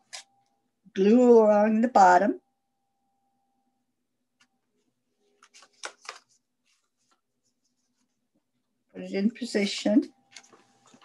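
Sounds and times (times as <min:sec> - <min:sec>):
paper rustling: 0:05.1 - 0:08.3, 0:10.3 - 0:11.0
faint paper scratches: 0:05.3 - 0:08.3.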